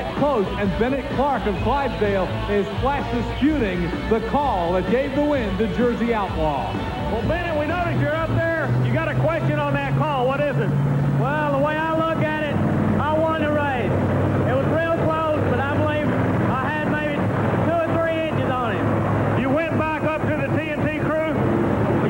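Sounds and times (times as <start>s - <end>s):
low engine drone: 0.0s - 22.0s
man talking into microphone: 0.0s - 22.0s.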